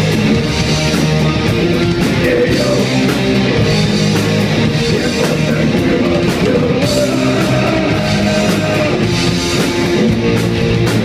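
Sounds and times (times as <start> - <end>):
drum kit: 0.0 - 11.0
electric guitar: 0.0 - 11.0.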